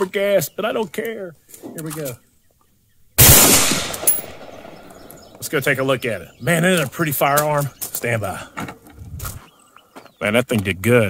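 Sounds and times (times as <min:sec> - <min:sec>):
rifle shot with long echo: 0:03.2 - 0:05.4.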